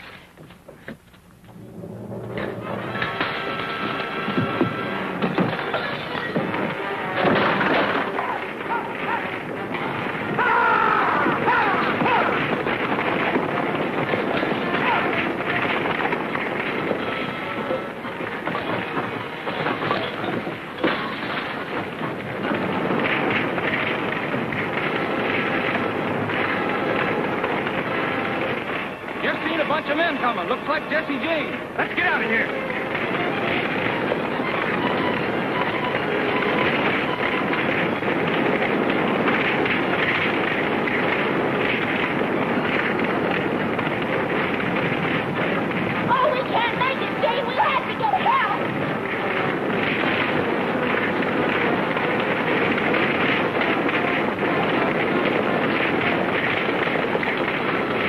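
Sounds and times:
fire crackling and popping: 0:00.0 - 0:58.0
music: 0:01.3 - 0:58.0
indistinct voices: 0:01.6 - 0:38.0, 0:42.7 - 0:58.0.

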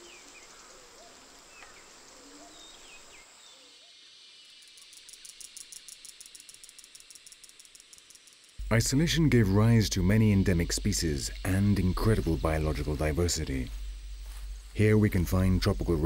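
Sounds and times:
high-pitched insect chirr: 0:00.0 - 0:16.0.

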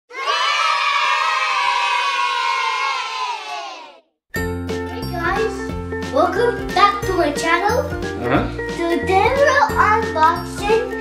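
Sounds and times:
children cheering and shouting: 0:00.1 - 0:04.0
children's music with bass line: 0:04.3 - 0:11.0.

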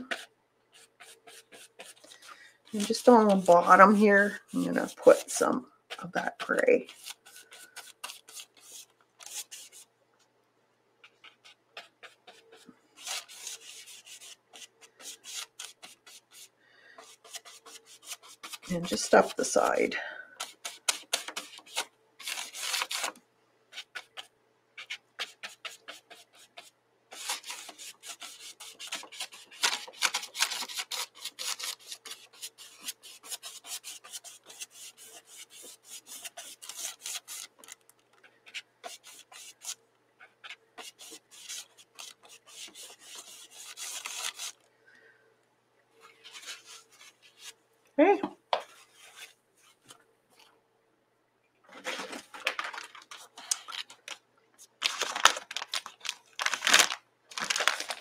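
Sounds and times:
paintbrush scrubbing on canvas: 0:00.0 - 0:09.9, 0:11.0 - 0:37.7, 0:38.4 - 0:44.6, 0:46.0 - 0:47.6.

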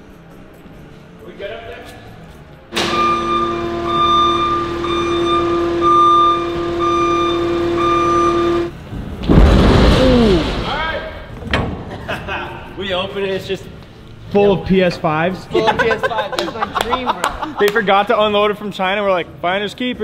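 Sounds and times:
steady drone with held tone: 0:02.7 - 0:08.7.

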